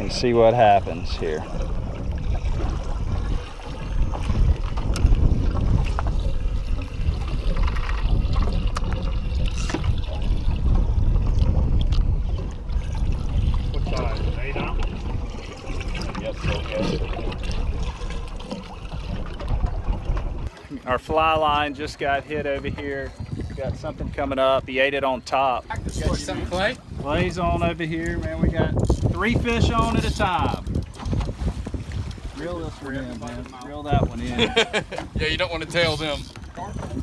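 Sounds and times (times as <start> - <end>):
water sloshing against boat hull: 0.0 - 37.0
wind buffeting microphone: 0.0 - 37.0.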